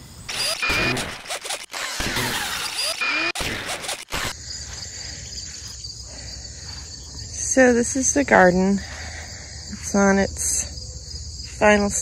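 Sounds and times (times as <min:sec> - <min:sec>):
crickets chirring: 0:00.0 - 0:03.0, 0:03.6 - 0:12.0.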